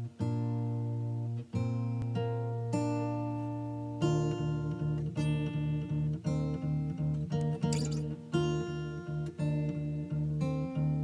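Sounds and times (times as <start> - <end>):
acoustic guitar picking chords: 0.0 - 11.0
guitar strum: 7.3 - 8.7.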